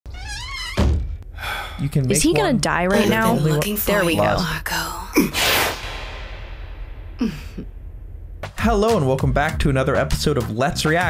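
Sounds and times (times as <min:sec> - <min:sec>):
voices: 0:01.9 - 0:05.1
person's voice wavering: 0:02.1 - 0:05.1
heavy low thump: 0:05.8 - 0:09.9.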